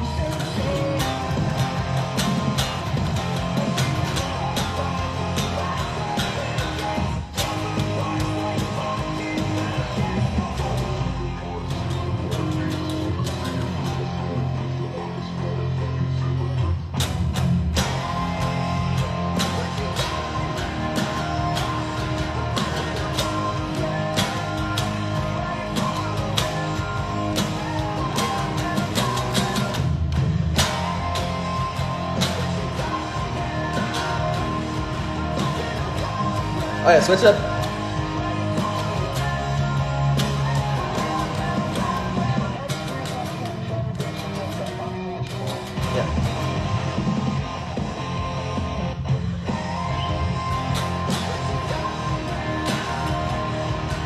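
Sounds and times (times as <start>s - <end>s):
electric guitar strumming rock chords: 0.0s - 54.0s
rock band with drums and bass: 0.0s - 54.0s.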